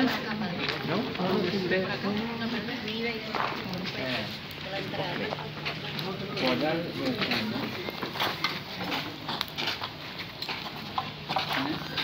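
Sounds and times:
crowd footsteps on concrete and dirt: 0.0 - 12.0
low murmured voices: 0.0 - 12.0.

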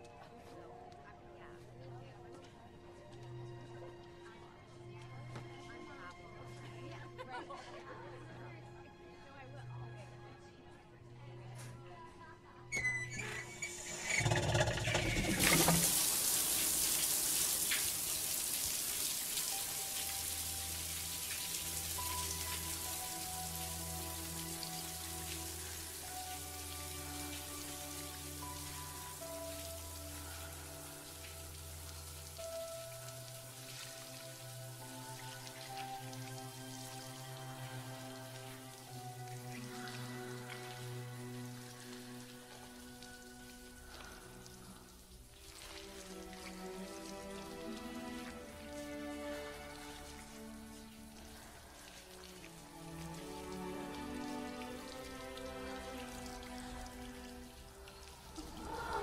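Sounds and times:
shower spray hissing: 13.1 - 59.0
slow film score chords: 19.0 - 59.0.

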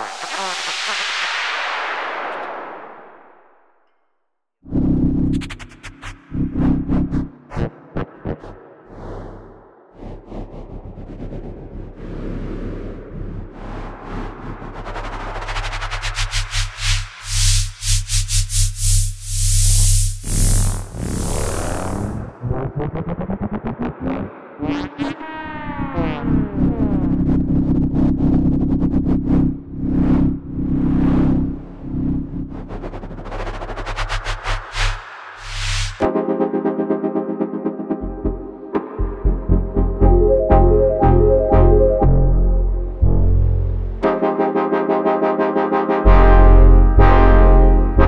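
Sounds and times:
hissing noise texture: 0.0 - 3.1, 13.2 - 22.3
low electronic drone: 4.6 - 34.9, 38.0 - 44.3, 46.1 - 48.0
rapid stuttering electronic pulses: 4.7 - 8.8, 13.7 - 36.1.

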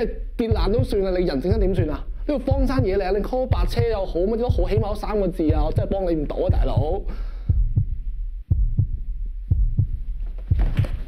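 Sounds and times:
steady low hum: 0.0 - 11.0
heartbeat double thump: 0.4 - 1.9, 2.5 - 11.0.

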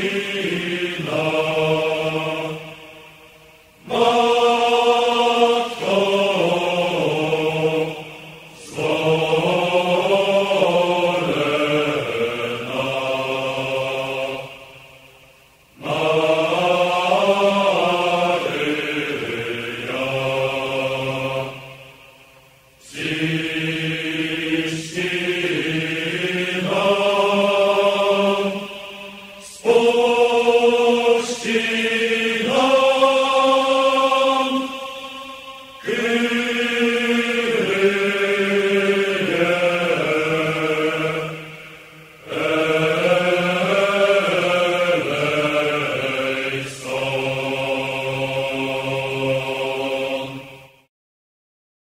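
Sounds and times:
slow chant-like singing: 0.0 - 50.9.

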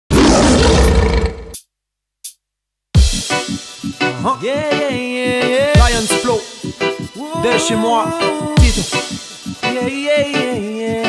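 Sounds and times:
lion roaring: 0.1 - 1.6.

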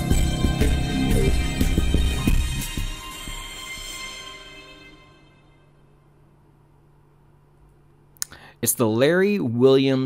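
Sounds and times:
intro music held tones: 0.0 - 6.8
faint steady hum: 4.6 - 10.0.

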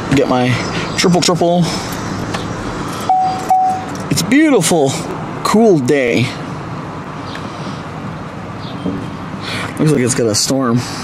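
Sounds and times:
outdoor traffic: 0.0 - 11.0
short beeps: 3.1 - 3.9.

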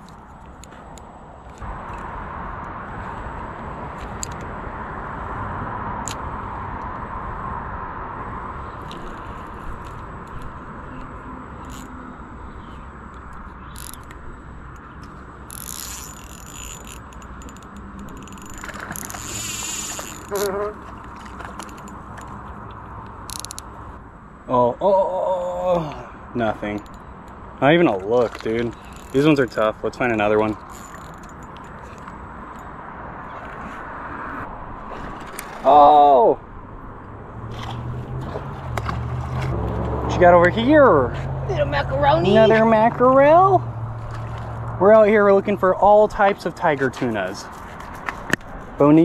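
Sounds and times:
fishing reel clicking and buzzing: 11.5 - 12.0, 13.1 - 20.6, 23.2 - 23.7, 28.4 - 32.7.

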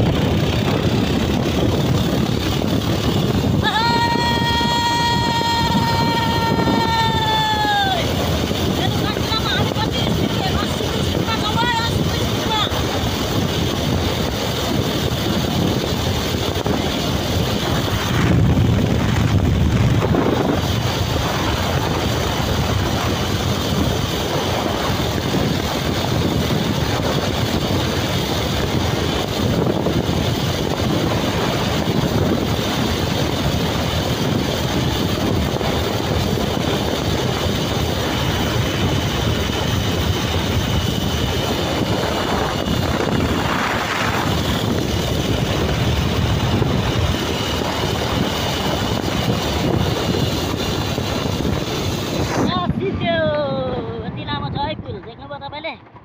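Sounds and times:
motorcycle engine: 0.0 - 56.0
road noise: 0.0 - 56.0
wind noise on microphone: 0.0 - 56.0.

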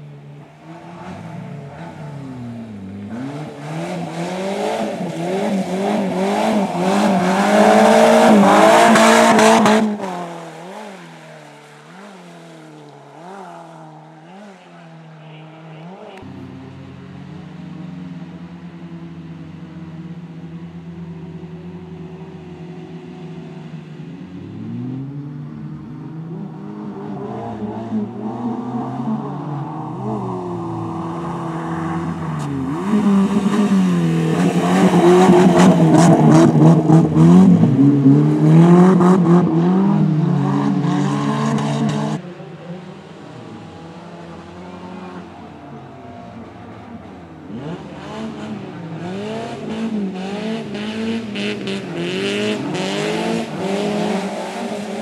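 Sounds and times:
racing car engine revving: 0.6 - 18.4, 24.4 - 55.0.

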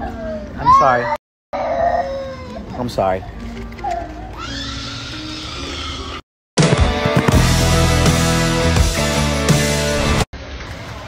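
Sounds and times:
small child screaming: 0.0 - 2.8, 4.3 - 6.2
background music: 4.5 - 10.3.

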